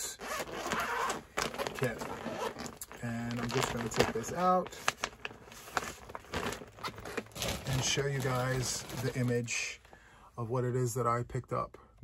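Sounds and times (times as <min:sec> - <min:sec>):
plastic bag crinkling: 0:00.4 - 0:09.8
paper sheet rustling: 0:03.1 - 0:09.5.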